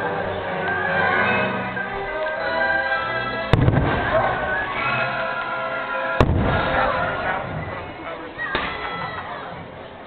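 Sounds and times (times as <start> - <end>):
loud firework bang: 3.5 - 4.3, 6.2 - 7.1.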